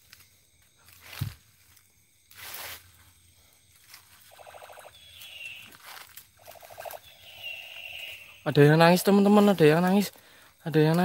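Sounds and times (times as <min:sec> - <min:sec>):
rustle: 0:00.0 - 0:04.4, 0:05.1 - 0:11.0.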